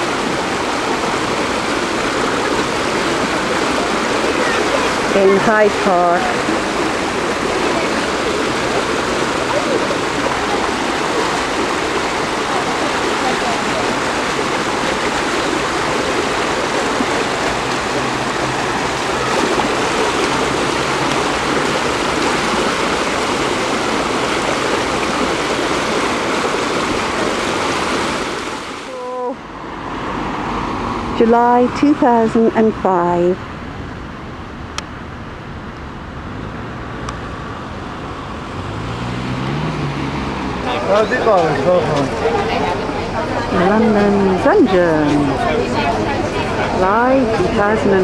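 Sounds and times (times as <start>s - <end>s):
water rushing down channel: 0.0s - 48.0s.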